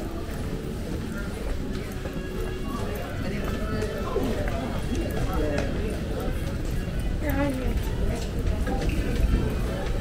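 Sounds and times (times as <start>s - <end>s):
many people talking: 0.0s - 10.0s
music: 0.0s - 10.0s.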